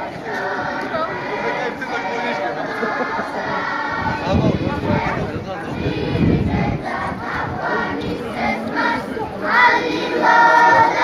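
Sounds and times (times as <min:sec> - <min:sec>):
crowd singing in chorus: 0:00.0 - 0:11.0.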